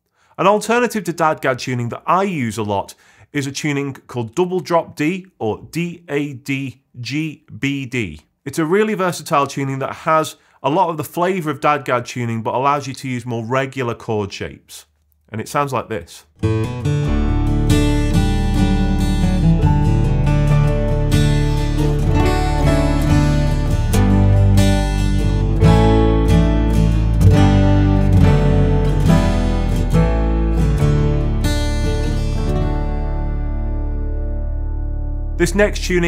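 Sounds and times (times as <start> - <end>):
acoustic guitar picked chords: 16.4 - 36.0.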